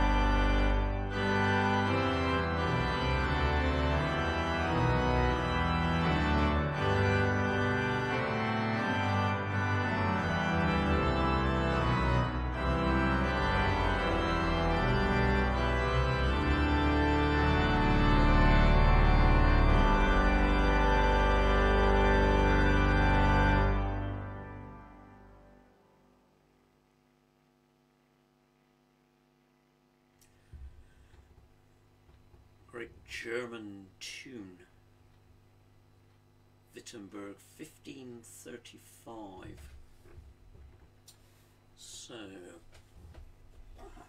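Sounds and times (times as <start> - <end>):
organ playing a hymn tune: 0.0 - 26.0.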